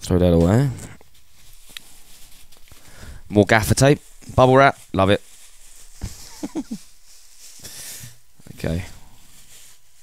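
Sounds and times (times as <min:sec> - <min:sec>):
bubble wrap crinkling: 0:01.0 - 0:07.6, 0:09.2 - 0:10.0
man laughing: 0:06.2 - 0:06.9.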